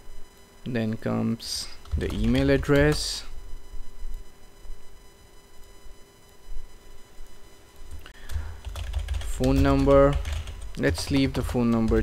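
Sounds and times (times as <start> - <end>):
keyboard keys clicking: 7.9 - 12.0.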